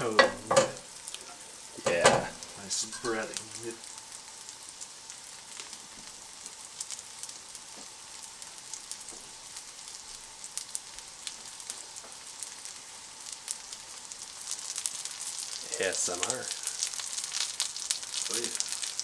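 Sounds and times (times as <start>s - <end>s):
fish sizzling in oil: 0.0s - 19.0s.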